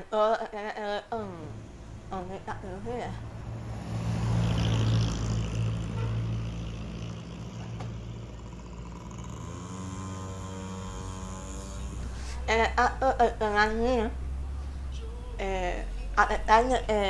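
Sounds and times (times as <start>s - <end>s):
vehicle engine approaching: 1.1s - 17.0s
vehicle passing with rumble: 1.1s - 17.0s.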